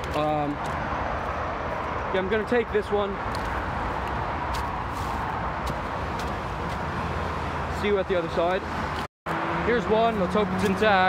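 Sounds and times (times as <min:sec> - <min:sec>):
highway traffic drone: 0:00.0 - 0:11.0
footsteps crunching on dirt: 0:03.3 - 0:06.9.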